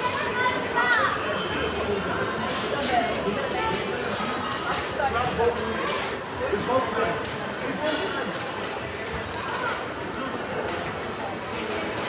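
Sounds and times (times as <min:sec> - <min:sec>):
murmur of room noise: 0:00.0 - 0:12.0.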